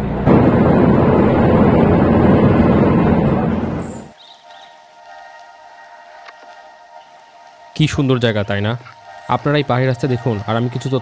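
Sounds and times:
bus rumble and wind noise: 0.0s - 4.1s
quiet background music: 4.1s - 11.0s.

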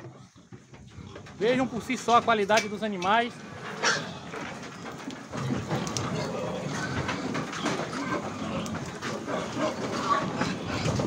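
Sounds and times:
hooves clattering on metal deck: 0.0s - 11.0s
metal gates rattling: 0.9s - 11.0s.

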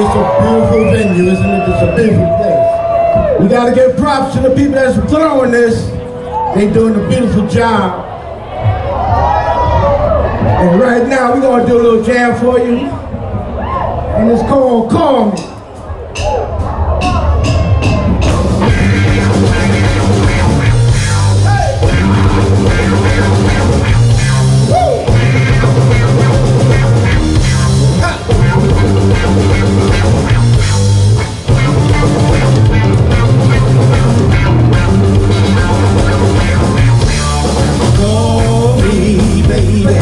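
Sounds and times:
bass guitar: 0.0s - 14.2s, 14.8s - 40.0s
drum kit: 15.3s - 40.0s
electric guitar: 18.4s - 40.0s.

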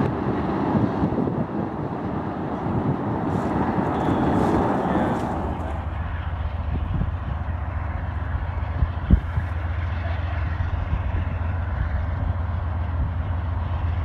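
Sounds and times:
distant diesel locomotives rumbling: 0.0s - 14.0s.

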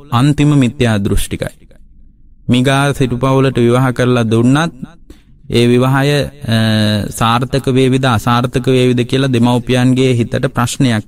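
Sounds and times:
man chanting a sermon: 0.0s - 1.8s, 2.5s - 11.0s.

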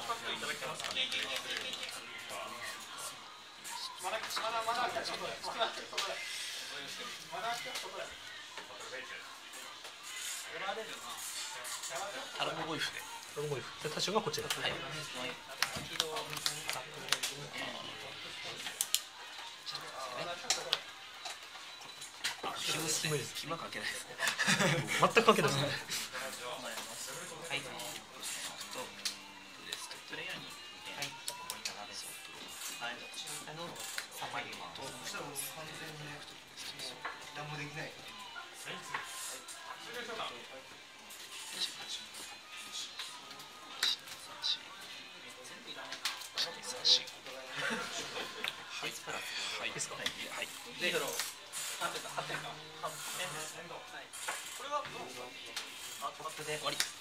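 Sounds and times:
background music: 0.0s - 57.0s.

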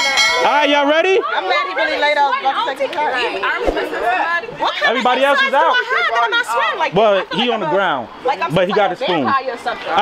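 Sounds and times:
overlapping group chatter: 0.0s - 10.0s.

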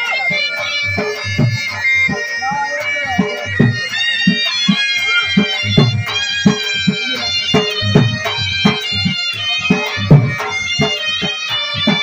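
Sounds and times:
drum beating: 0.0s - 12.0s
reedy pipe melody: 0.0s - 12.0s.

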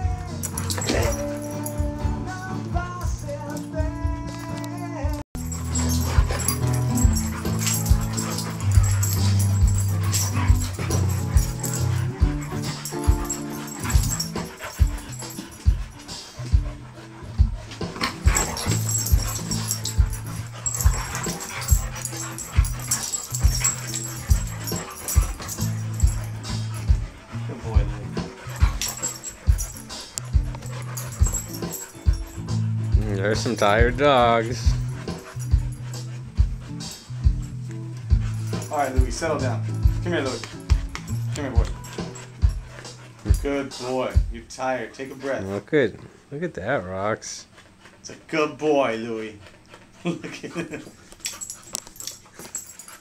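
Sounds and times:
dogs growling and barking: 0.0s - 45.5s, 48.9s - 53.0s.

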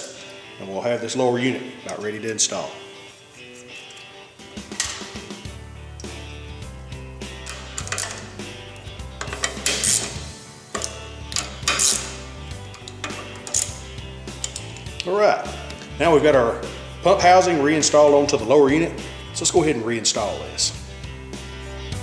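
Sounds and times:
background music: 0.0s - 22.0s
hand ratchet clicking: 7.3s - 15.1s.

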